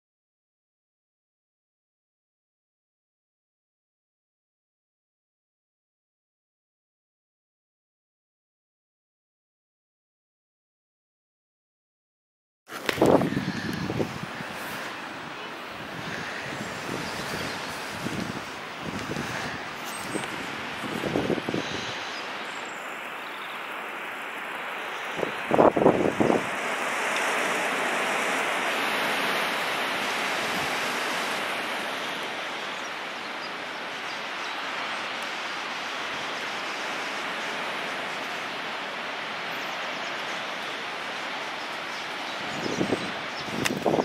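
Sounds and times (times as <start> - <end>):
wind buffeting microphone: 12.7 - 22.7, 25.0 - 32.5, 42.3 - 44.0
wind blowing over microphone: 12.7 - 35.1, 41.4 - 44.0.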